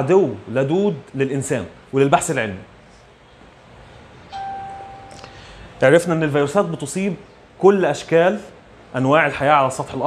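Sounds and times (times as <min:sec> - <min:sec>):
electronic ding: 0:04.3 - 0:05.4.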